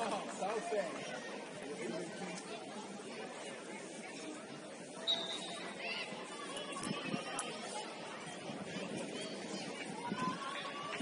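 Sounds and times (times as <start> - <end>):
faint chatter of voices: 0.0 - 11.0.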